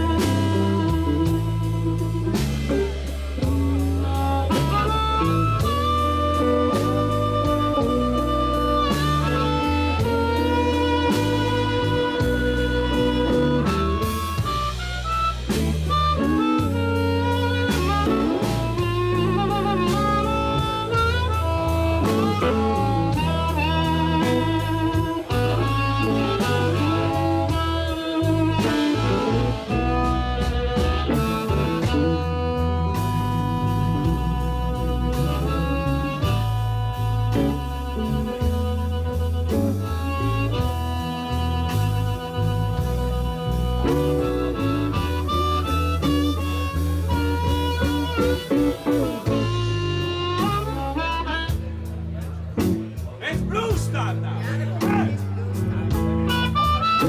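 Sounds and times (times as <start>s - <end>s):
bass guitar: 0.0s - 57.0s
drums: 0.0s - 57.0s
electric guitar: 0.0s - 57.0s
harmonica playing lead: 0.0s - 57.0s.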